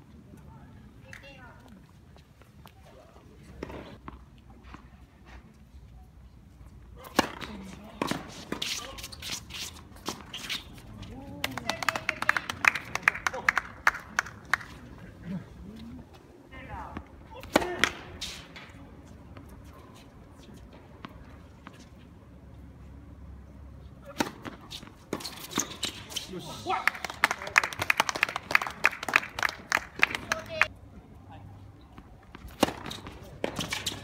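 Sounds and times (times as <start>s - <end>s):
players' voices: 6.9s - 22.0s, 23.9s - 34.0s
tennis ball struck by racket: 7.0s - 8.8s, 17.4s - 18.4s, 24.0s - 26.0s, 32.3s - 34.0s.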